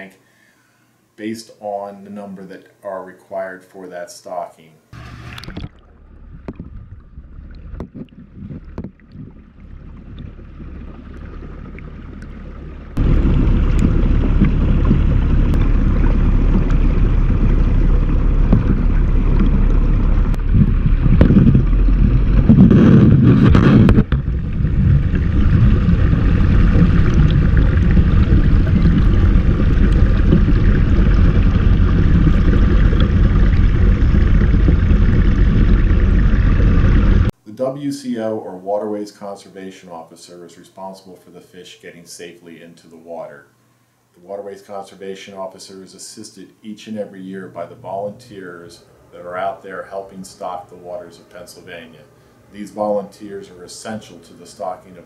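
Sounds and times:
water churning and bubbling: 5.0 - 37.3.

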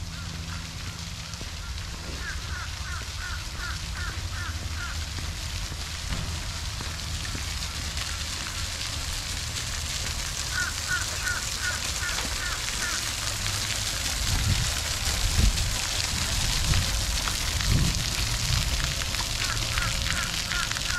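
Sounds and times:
fountain spraying on concrete: 0.0 - 20.9.

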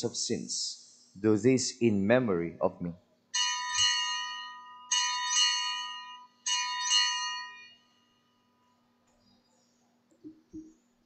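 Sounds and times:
altar bells ringing: 3.4 - 8.6.

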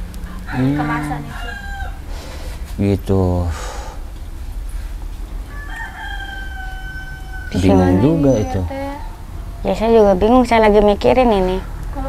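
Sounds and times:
rooster crowing: 0.0 - 2.6, 5.4 - 9.6
low steady background rumble: 0.0 - 12.0.

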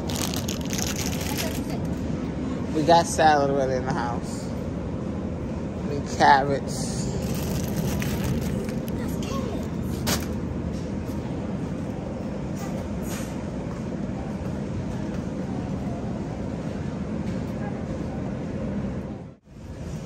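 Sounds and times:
shopping cart rolling: 0.0 - 1.9, 7.2 - 10.4.

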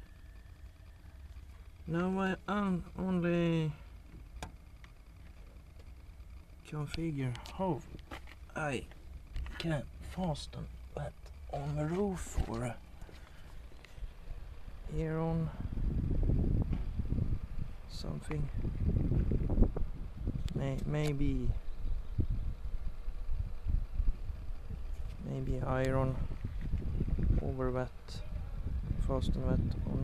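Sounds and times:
low background rumble: 0.0 - 30.0
handheld camera handling rumble: 6.9 - 10.4, 11.5 - 14.5, 24.6 - 27.5
wind on microphone: 15.2 - 30.0.

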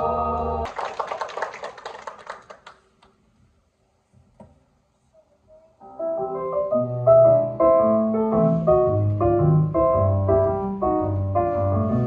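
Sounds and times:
audience clapping: 0.3 - 3.2.

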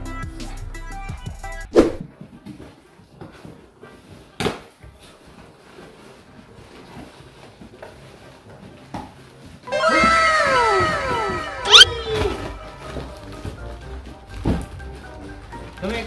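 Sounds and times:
background music: 0.0 - 4.6, 5.2 - 16.0.

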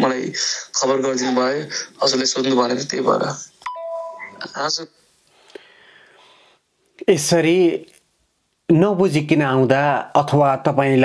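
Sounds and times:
man's voice through phone speaker: 0.0 - 3.4
electronic two-note chime: 3.7 - 4.5.

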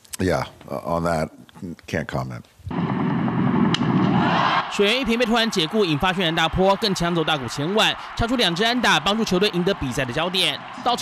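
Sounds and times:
bat cracking ball: 2.8 - 4.4
crowd cheering: 2.8 - 11.0
ballpark crowd noise: 3.7 - 11.0.

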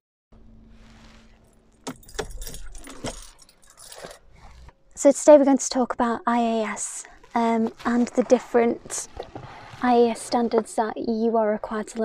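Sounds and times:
car keys jangling: 1.3 - 4.8.

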